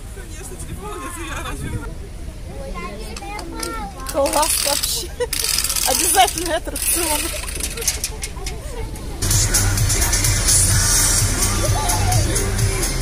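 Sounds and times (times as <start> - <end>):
people talking: 0.0 - 13.0
music: 9.2 - 13.0.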